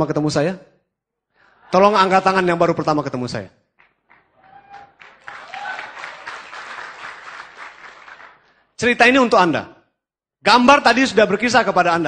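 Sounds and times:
audience applause: 3.8s - 8.6s.

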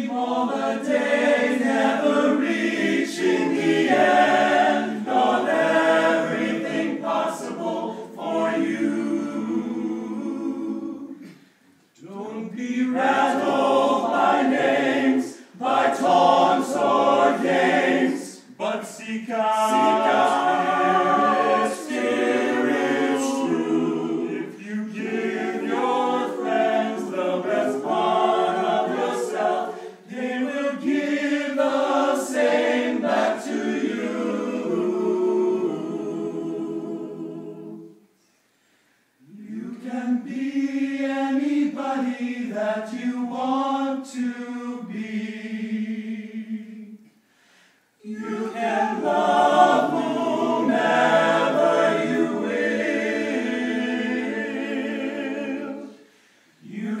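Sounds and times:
men singing a cappella in harmony: 0.0s - 11.4s, 12.0s - 37.9s, 39.2s - 47.0s, 48.0s - 57.0s.

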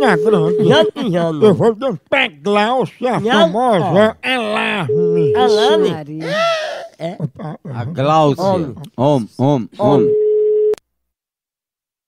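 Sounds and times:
telephone line tone: 0.0s - 0.9s, 4.9s - 5.9s, 9.8s - 10.8s.

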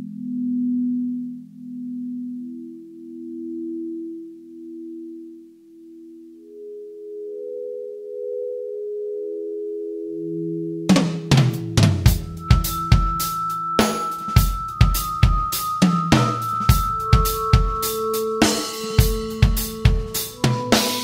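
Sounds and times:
rising electronic tones: 10.9s - 21.0s.

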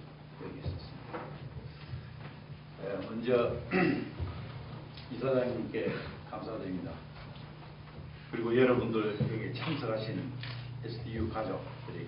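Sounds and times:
low steady hum: 0.0s - 12.0s
man speaking: 8.3s - 12.0s.

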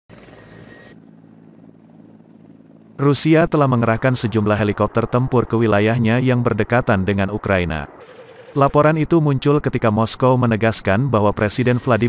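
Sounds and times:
helicopter engine and rotor hum: 0.1s - 12.0s
high hiss and whine: 11.2s - 12.0s.

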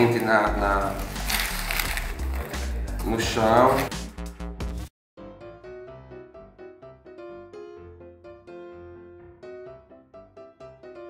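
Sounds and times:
background music with bass line: 0.0s - 6.1s.

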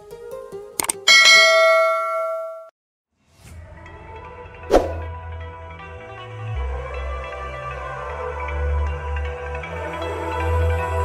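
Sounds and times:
bell chime ringing: 1.1s - 2.7s.

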